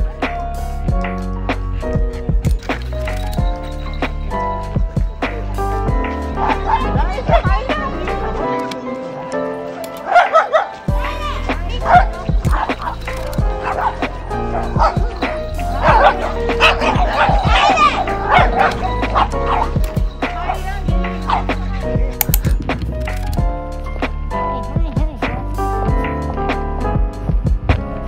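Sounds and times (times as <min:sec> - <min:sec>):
background music: 0:00.0 - 0:28.0
dogs barking: 0:05.3 - 0:22.2.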